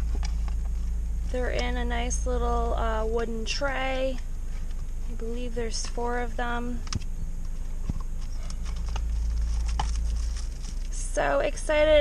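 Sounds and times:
low car cabin rumble: 0.0s - 12.0s
cardboard packaging rustling: 7.5s - 11.0s.

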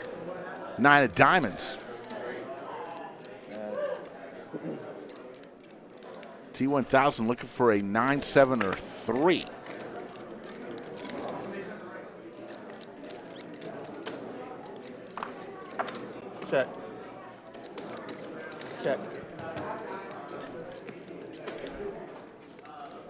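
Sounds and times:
murmur of voices: 0.0s - 23.0s.

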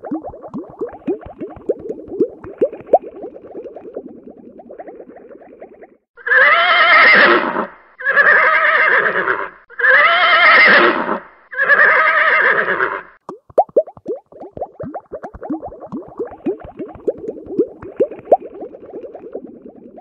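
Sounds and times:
horse whinnying: 6.2s - 13.1s
rapid falling plops: 13.2s - 20.0s.

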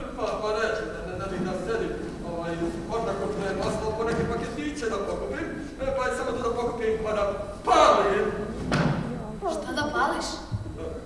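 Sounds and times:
actors speaking: 0.0s - 11.0s.

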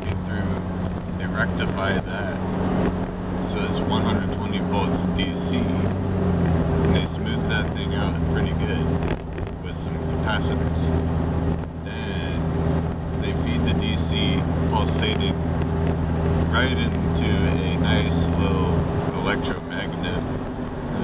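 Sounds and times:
man talking: 0.0s - 0.6s, 1.2s - 2.4s, 3.4s - 6.0s, 6.9s - 9.0s, 9.6s - 10.9s, 11.9s - 12.5s, 13.2s - 15.4s, 16.5s - 20.3s
car engine and road drone: 0.0s - 21.0s.

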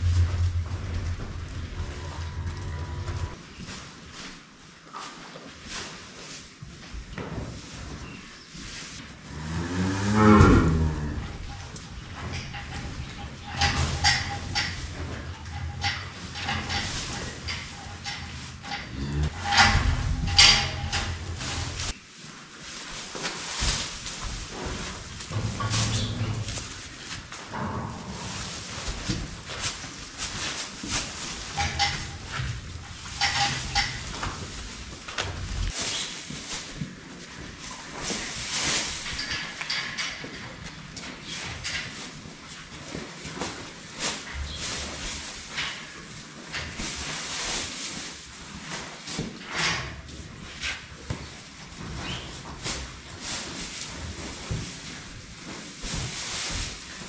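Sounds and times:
dry straw rustling and crunching: 0.0s - 40.4s, 41.0s - 57.0s.

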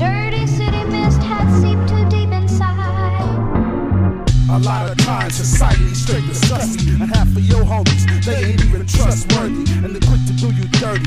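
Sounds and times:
rapping over a beat: 0.0s - 3.3s, 4.3s - 11.0s.

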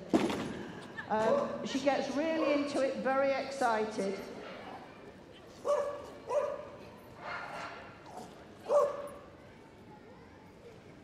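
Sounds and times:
dog barking: 5.6s - 7.8s, 8.7s - 9.1s.

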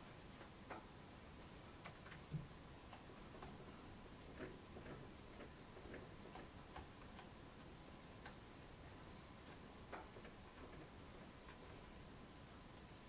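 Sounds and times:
faint steady hum: 0.0s - 13.0s.

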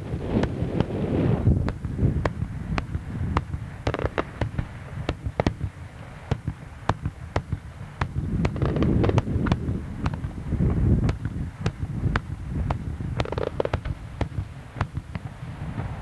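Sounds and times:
fireworks bursting: 0.0s - 16.0s
low rumble: 0.0s - 16.0s.

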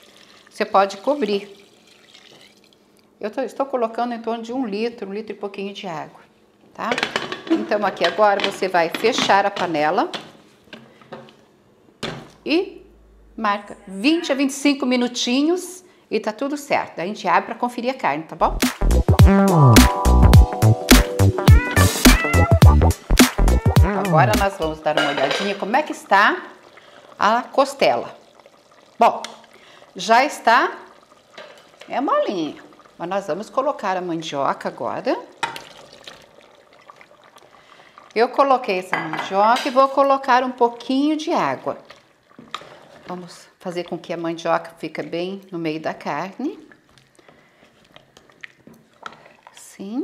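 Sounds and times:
faint wet sliding: 41.9s - 43.4s.

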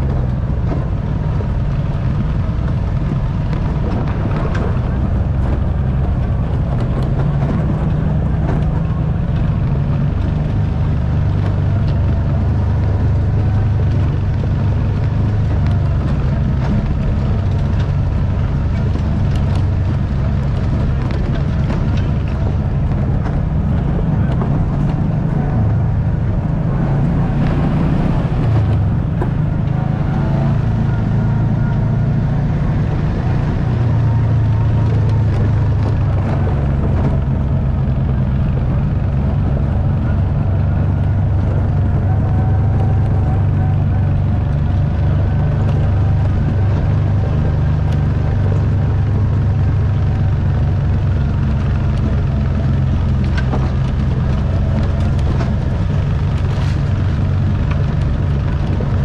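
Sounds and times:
knocks and rattles: 0.0s - 59.0s
off-road vehicle engine: 0.0s - 59.0s.

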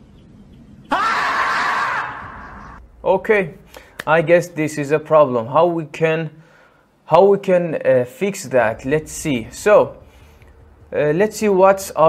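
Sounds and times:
faint background noise: 0.0s - 12.0s
marmot screaming: 0.9s - 2.8s.

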